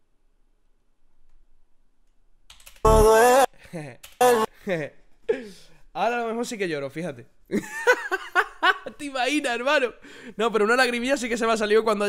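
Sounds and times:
man exclaiming loudly: 2.9s - 3.5s, 4.2s - 4.5s
man laughing: 2.9s - 5.0s, 7.5s - 9.0s.

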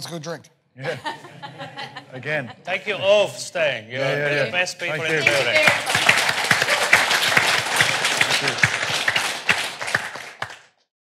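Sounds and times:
audience applauding: 4.6s - 10.9s.

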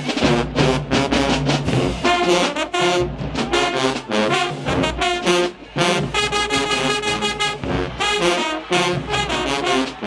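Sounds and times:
brass band holding loud chord: 0.0s - 10.0s.

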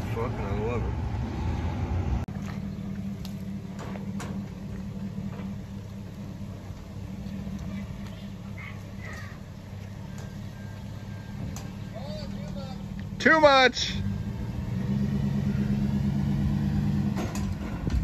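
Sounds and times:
truck engine idling: 0.0s - 18.0s.

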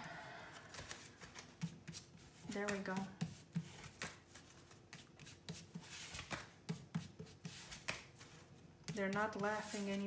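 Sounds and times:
cards tapping together: 0.6s - 8.2s.

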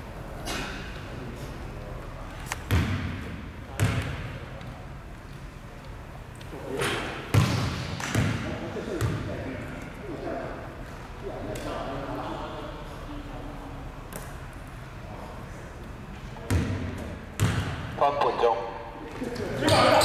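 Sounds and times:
voices talking: 18.0s - 20.0s.

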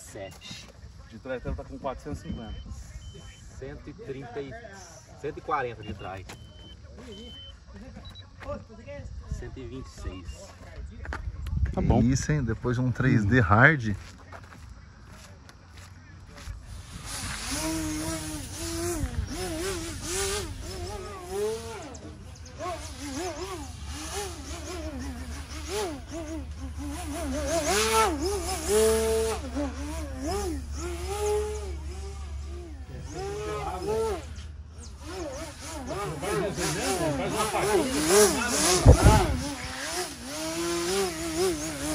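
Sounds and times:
model airplane engine: 15.8s - 41.9s.

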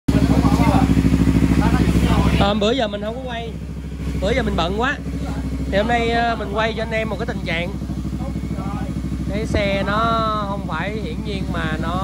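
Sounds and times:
motorcycle engine idling: 0.1s - 12.0s.

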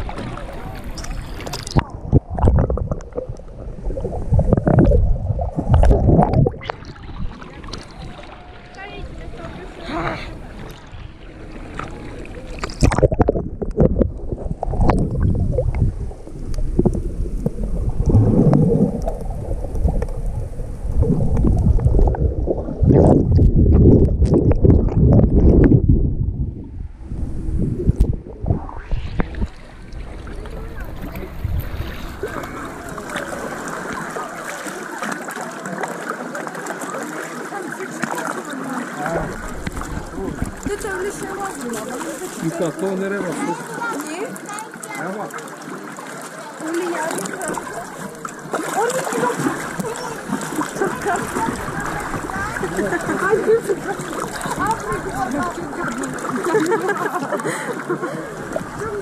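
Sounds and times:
muffled underwater sloshing: 0.0s - 59.0s
water splashing: 0.0s - 59.0s.

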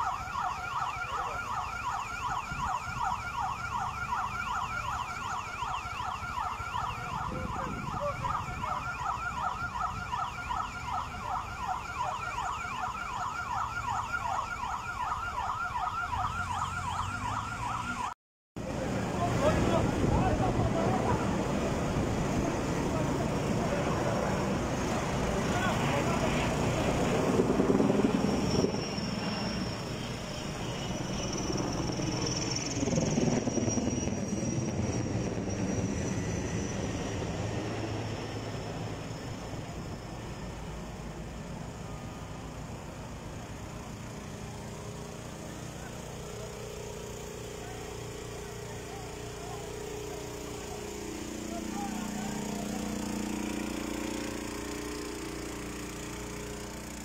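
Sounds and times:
voices: 7.0s - 9.0s, 18.6s - 27.9s, 43.7s - 54.5s
aircraft engine drone: 18.6s - 57.0s.

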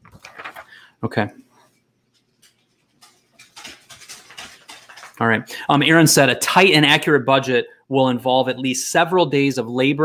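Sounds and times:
dog claws clicking and scuffling: 2.1s - 5.2s.

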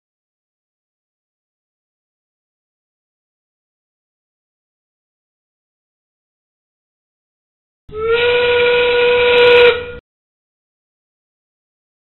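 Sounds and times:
steam whistle blast: 7.9s - 10.0s.

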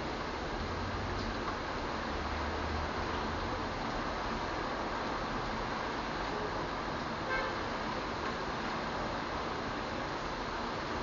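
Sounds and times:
steady rain: 0.0s - 11.0s.

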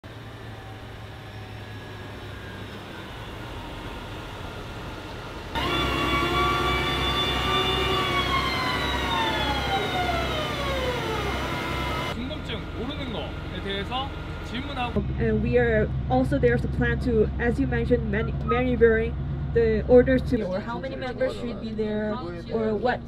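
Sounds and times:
hydraulic whine: 0.0s - 15.3s
truck engines running: 0.0s - 20.8s
low pulsing engine idle: 0.1s - 23.0s.

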